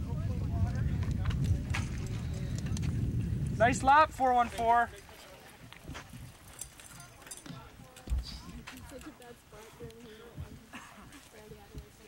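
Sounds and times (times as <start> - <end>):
faint indistinct talking: 5.0 - 12.0.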